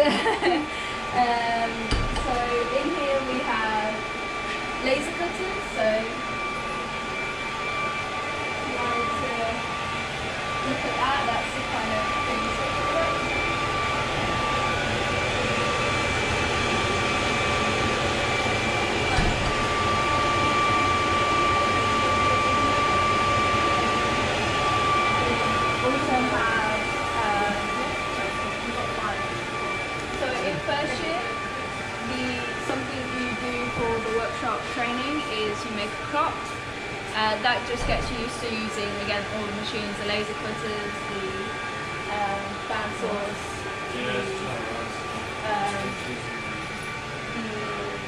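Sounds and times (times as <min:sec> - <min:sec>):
machinery hum with whining tones: 0:00.0 - 0:48.0
indistinct voices: 0:30.0 - 0:36.3, 0:42.1 - 0:46.6.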